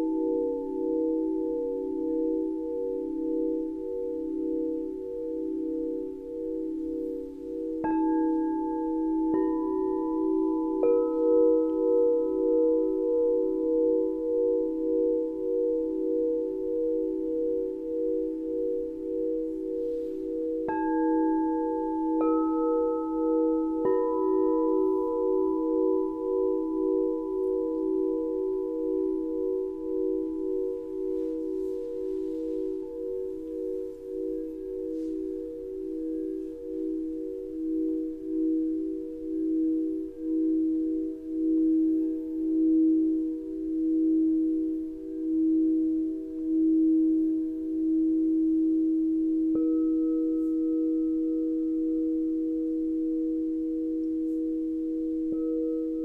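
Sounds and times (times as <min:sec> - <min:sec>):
crystal singing bowls ringing: 0:00.0 - 0:56.0.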